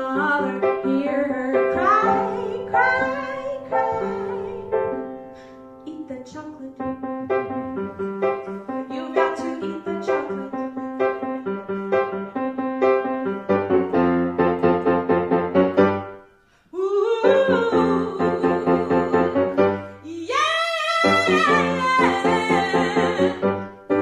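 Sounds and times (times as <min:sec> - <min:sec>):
woman singing: 0:00.0 - 0:05.2, 0:05.8 - 0:11.9, 0:16.7 - 0:24.0
grand piano playing pop song: 0:00.0 - 0:16.4, 0:17.0 - 0:24.0.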